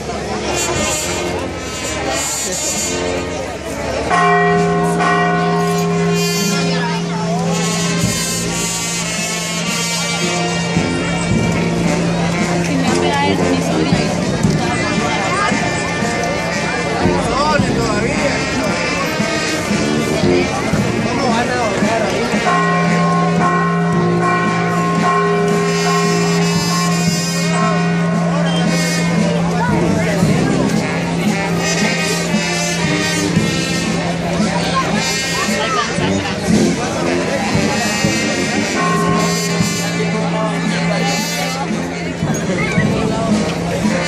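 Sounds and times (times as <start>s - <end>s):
church bell ringing: 3.9s - 35.7s, 37.8s - 44.0s.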